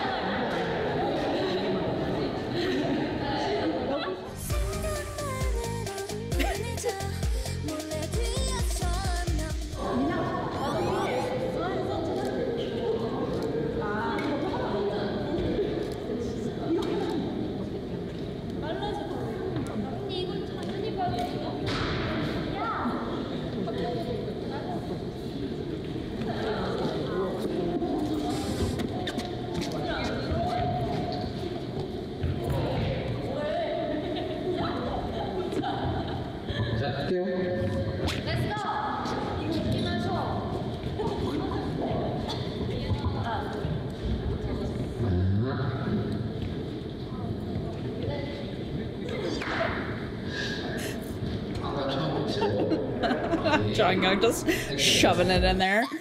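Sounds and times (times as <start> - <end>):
people talking and calling out: 0.0 - 56.0
young women talking: 9.8 - 12.4, 53.5 - 56.0.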